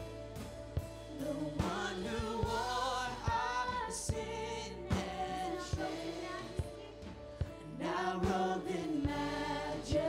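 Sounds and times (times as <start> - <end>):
band sustained chords: 0.0 - 10.0
man and woman singing: 1.2 - 6.8, 7.6 - 10.0.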